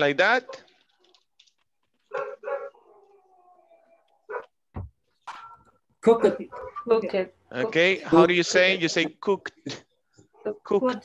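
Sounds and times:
dog barking: 2.1s - 3.4s, 4.2s - 4.6s, 6.1s - 6.8s
dog whining: 2.1s - 4.6s
dog yelping: 2.1s - 4.6s, 6.1s - 6.9s.

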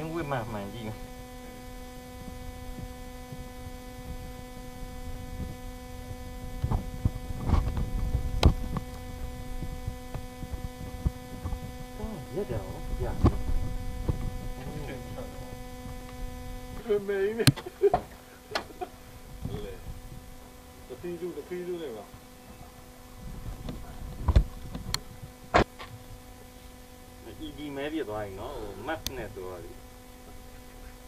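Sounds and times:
electrical hum: 0.0s - 31.0s.

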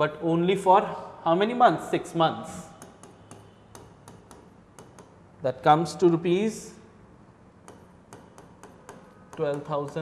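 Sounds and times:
pen tip tapping on board: 2.8s - 5.2s, 7.6s - 10.0s.

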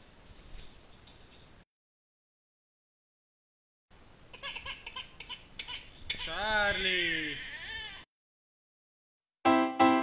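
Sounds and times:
infant crying: 5.7s - 8.1s.

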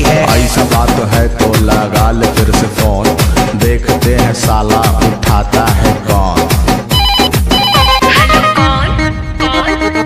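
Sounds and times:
song with drum beat: 0.0s - 10.0s
telephone ringing: 6.9s - 8.4s.

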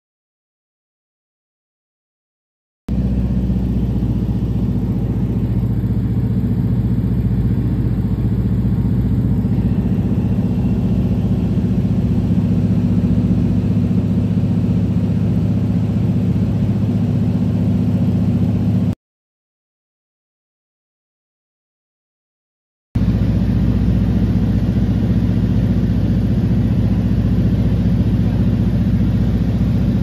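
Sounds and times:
plane engine and propeller droning: 2.9s - 19.0s, 23.0s - 30.0s.

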